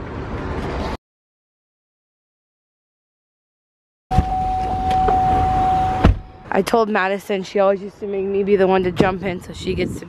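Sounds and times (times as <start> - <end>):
car door clicks: 4.1 - 6.4
electronic warning tone: 4.1 - 6.7
low car rumble: 4.1 - 10.0.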